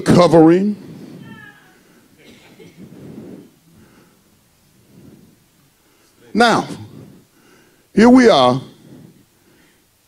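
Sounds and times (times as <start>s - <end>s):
low murmured responses: 0.0s - 10.0s.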